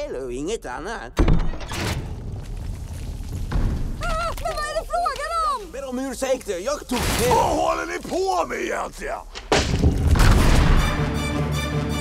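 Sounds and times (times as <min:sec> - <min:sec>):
music: 0:10.4 - 0:12.0.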